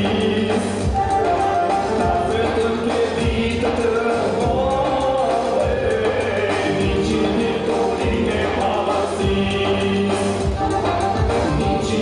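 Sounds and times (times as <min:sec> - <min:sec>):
song with singing and beat: 0:00.0 - 0:12.0.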